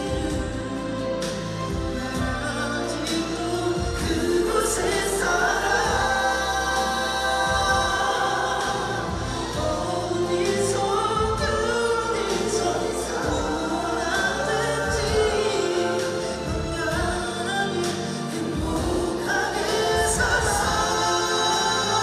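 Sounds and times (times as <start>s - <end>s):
backing music over loudspeakers: 0.0s - 22.0s
man singing a slow ballad: 0.0s - 22.0s.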